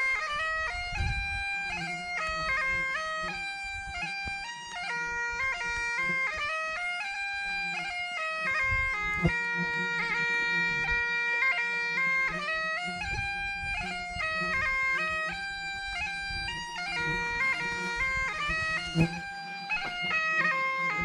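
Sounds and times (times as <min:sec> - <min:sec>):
bagpipes playing a melody: 0:00.0 - 0:21.0.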